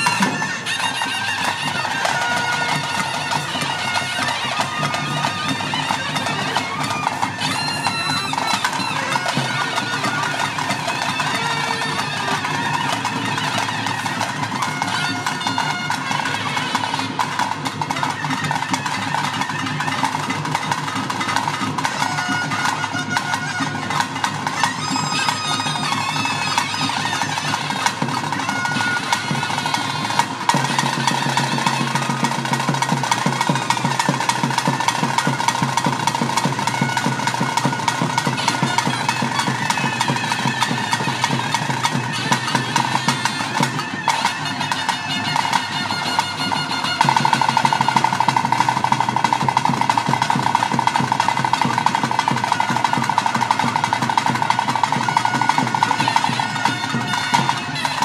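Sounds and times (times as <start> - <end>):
continuous drumming: 0.0 - 58.0
reed pipe playing: 0.0 - 58.0.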